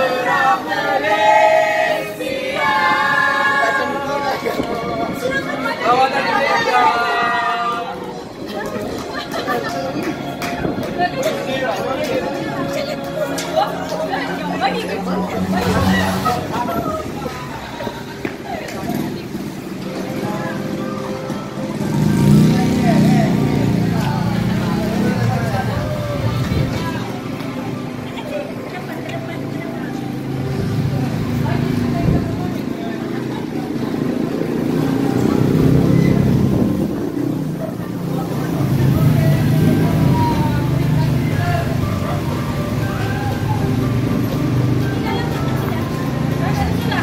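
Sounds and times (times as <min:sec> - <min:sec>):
background music: 0:00.0 - 0:31.4, 0:38.6 - 0:47.0
voices talking: 0:00.0 - 0:47.0
car engines running: 0:08.0 - 0:47.0.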